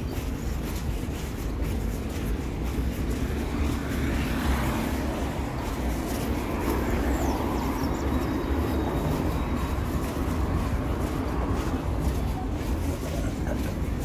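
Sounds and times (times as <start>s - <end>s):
cars driving past: 0.0s - 14.0s
steady low traffic rumble: 0.0s - 14.0s.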